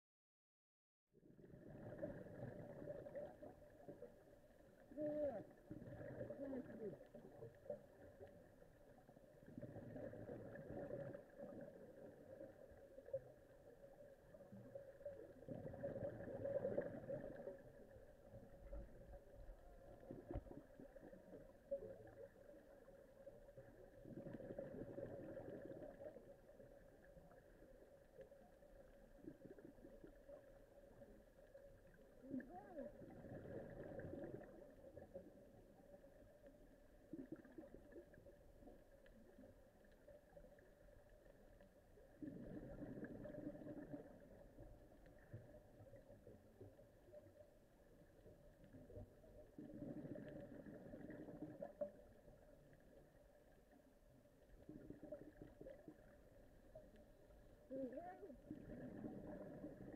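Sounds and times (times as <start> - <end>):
underwater water noise: 1.2 - 59.9.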